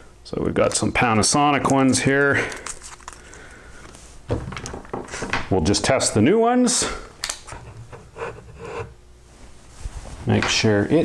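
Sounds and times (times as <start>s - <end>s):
faint rubbing and handling: 2.5s - 4.3s, 7.5s - 11.0s.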